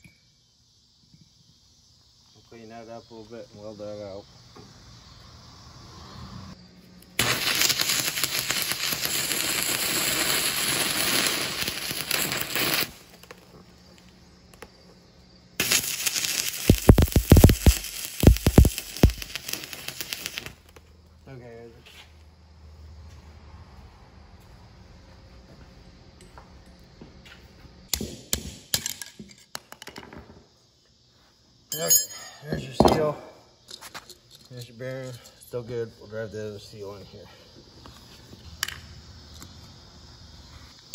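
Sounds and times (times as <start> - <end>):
crackling welding arc: 7.0 - 14.1, 15.6 - 20.8.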